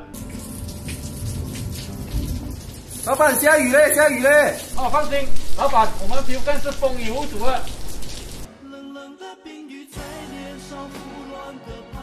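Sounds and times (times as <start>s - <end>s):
rain falling: 0.2s - 8.5s
low rumble of thunder: 1.2s - 2.7s.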